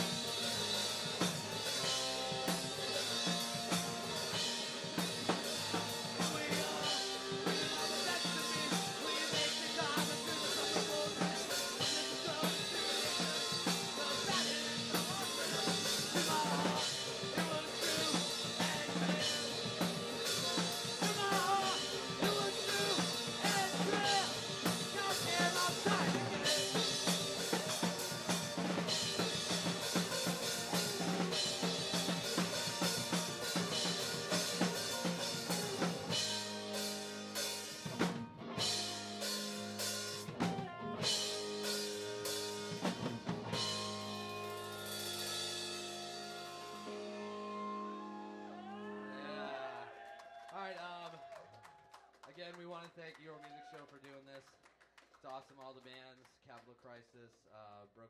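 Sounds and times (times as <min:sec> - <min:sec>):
drum kit beat: 0:00.0 - 0:47.7
live band playing: 0:00.0 - 0:49.5
electric guitar: 0:00.0 - 0:49.9.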